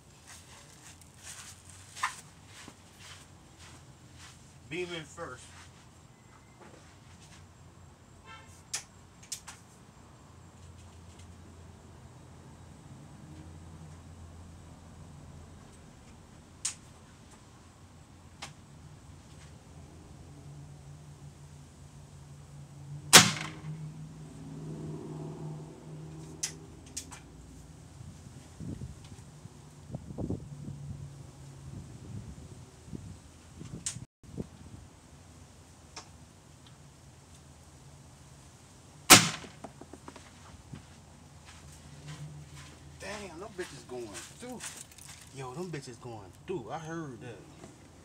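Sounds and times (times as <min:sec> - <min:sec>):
air gun shot cracks: 0:23.1 - 0:23.7, 0:39.1 - 0:39.6.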